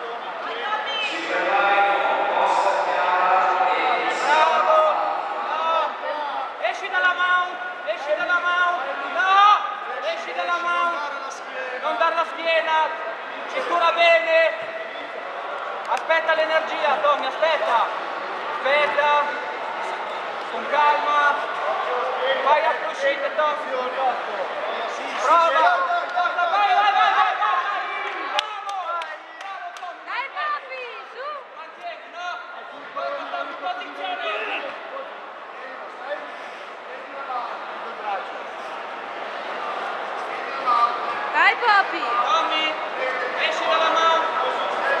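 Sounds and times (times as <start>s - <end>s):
voices of people: 0.0s - 45.0s.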